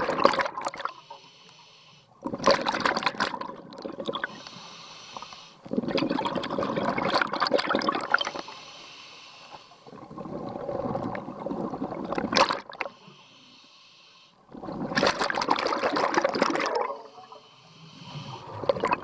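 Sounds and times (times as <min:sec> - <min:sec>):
exhaled bubbles rushing: 0:00.0 - 0:00.9, 0:02.3 - 0:04.3, 0:05.7 - 0:08.4, 0:09.9 - 0:12.9, 0:14.5 - 0:17.1, 0:18.4 - 0:19.0
regulator inhalation hiss: 0:00.9 - 0:02.2, 0:04.2 - 0:05.7, 0:08.2 - 0:09.9, 0:12.9 - 0:14.4, 0:17.0 - 0:18.6.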